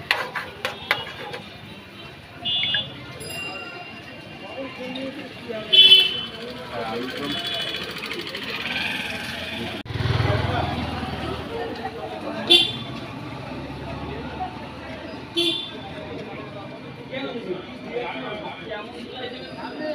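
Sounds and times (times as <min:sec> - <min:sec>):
vehicle horn toots: 0:02.4 - 0:03.0, 0:05.7 - 0:06.4, 0:12.5 - 0:12.9, 0:15.4 - 0:15.8
low traffic rumble: 0:04.2 - 0:18.1.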